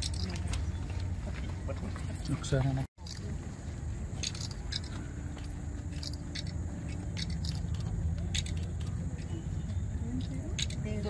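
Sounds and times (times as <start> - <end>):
vehicle engine idling: 3.2 - 11.0.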